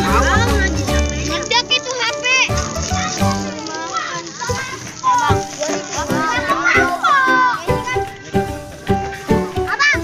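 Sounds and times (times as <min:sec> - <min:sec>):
background music: 0:00.0 - 0:10.0
children shouting and chattering: 0:00.0 - 0:10.0.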